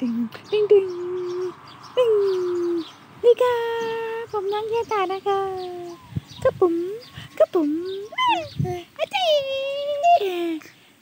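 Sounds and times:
high-pitched wordless voice sounds: 0.0s - 10.8s.

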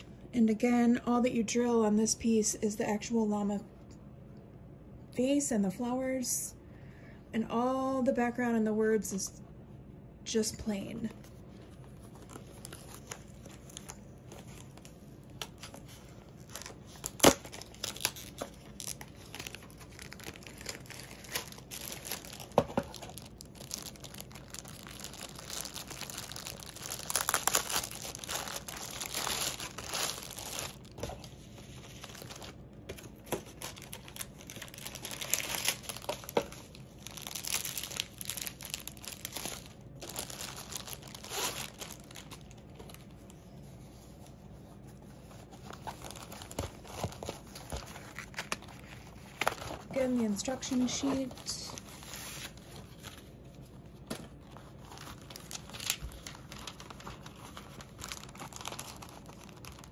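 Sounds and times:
plastic packaging crinkling: 11.7s - 43.4s, 45.3s - 59.9s
sharp plastic crackles: 12.4s - 43.0s, 54.9s - 59.9s.

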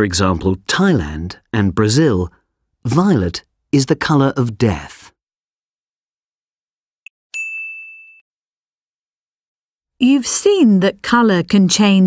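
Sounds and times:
bell-like chime ding: 7.3s - 8.2s.

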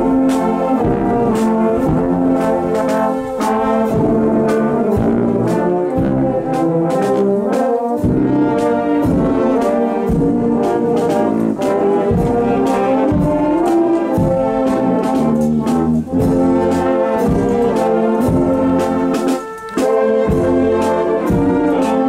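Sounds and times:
marching brass band playing: 0.0s - 22.0s.

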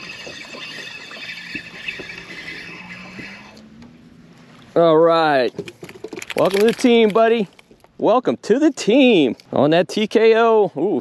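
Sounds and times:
fishing reel whirring: 0.0s - 3.6s.

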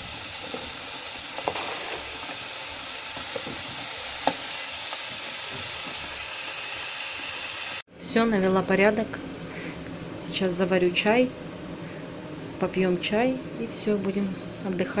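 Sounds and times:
electric kettle hissing: 0.0s - 7.8s.

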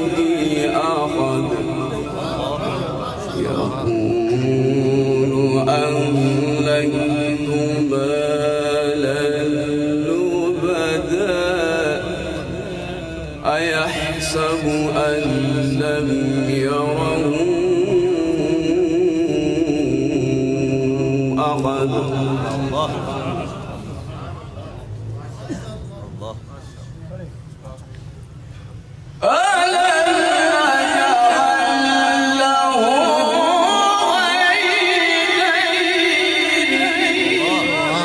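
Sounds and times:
man chanting melodically: 0.0s - 26.7s, 29.2s - 38.0s.

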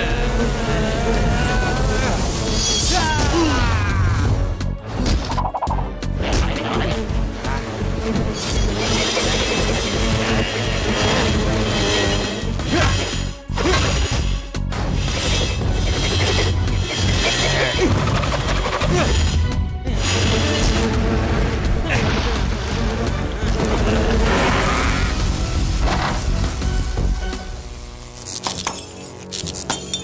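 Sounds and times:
cartoon action music: 2.7s - 27.3s.

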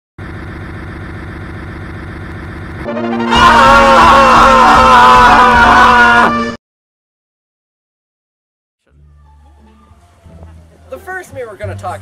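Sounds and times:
truck engine rumbling: 0.2s - 5.6s, 8.9s - 12.0s.

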